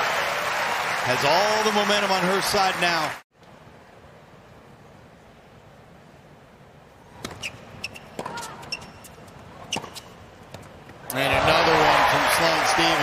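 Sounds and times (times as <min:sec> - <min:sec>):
crowd cheering and applauding: 0:00.0 - 0:03.2, 0:11.1 - 0:13.0
racket hitting tennis ball: 0:07.2 - 0:10.7.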